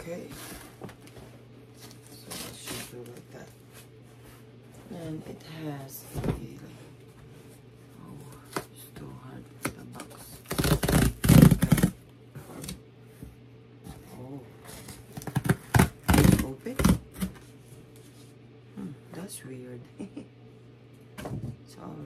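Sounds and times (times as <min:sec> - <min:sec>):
cardboard and packing rustling: 0:00.0 - 0:08.8.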